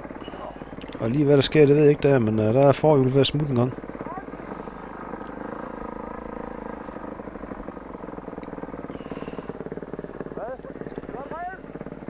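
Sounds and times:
motorcycle engine at low revs: 0:00.0 - 0:12.0.

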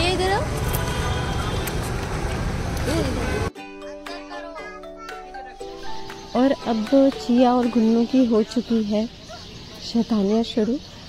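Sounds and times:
low road traffic rumble: 0:00.0 - 0:03.5.

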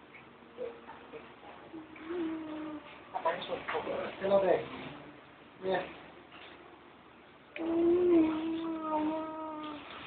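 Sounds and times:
young child whining: 0:01.8 - 0:03.0, 0:07.6 - 0:09.9.

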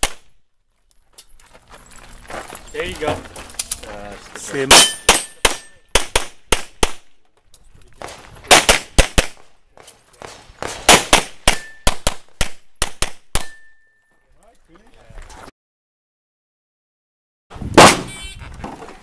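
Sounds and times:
pistol shots: 0:04.7 - 0:07.1, 0:08.0 - 0:09.4, 0:10.2 - 0:13.7.

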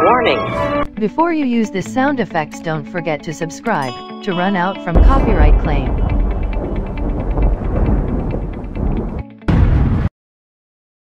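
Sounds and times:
music: 0:00.0 - 0:09.5
loud bass-heavy rumble: 0:05.0 - 0:09.2.

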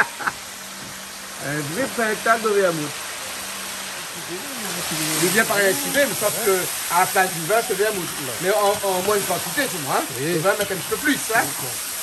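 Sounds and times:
food hissing in a wok: 0:00.0 - 0:12.0
person speaking: 0:04.2 - 0:11.8.

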